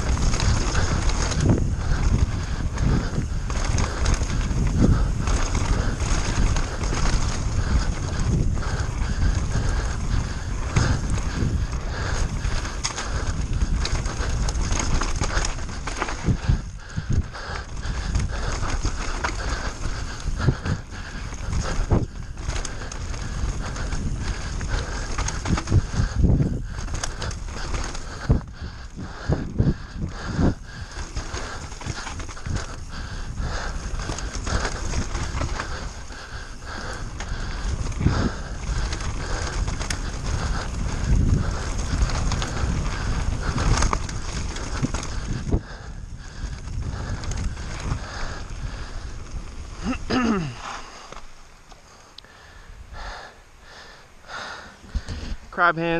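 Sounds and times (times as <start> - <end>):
bike rattling and knocking: 0.0 - 55.9
wind rush: 0.0 - 55.9.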